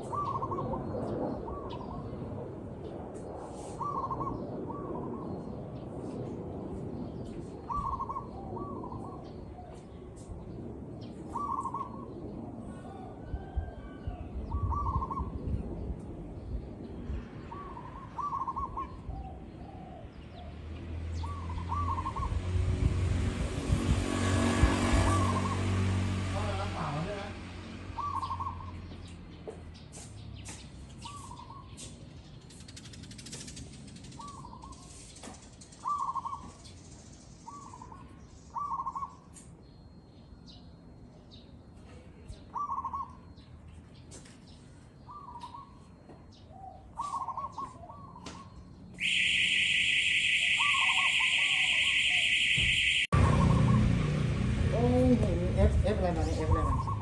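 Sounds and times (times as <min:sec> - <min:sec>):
dove cooing: 0:00.0 - 0:00.9, 0:03.7 - 0:05.2, 0:07.7 - 0:09.8, 0:11.3 - 0:15.3, 0:17.5 - 0:20.5, 0:21.2 - 0:22.4, 0:28.0 - 0:28.7, 0:42.5 - 0:43.3, 0:46.6 - 0:49.2, 0:50.4 - 0:54.0, 0:56.1 - 0:57.0
rushing noise with low hum: 0:00.0 - 0:38.5.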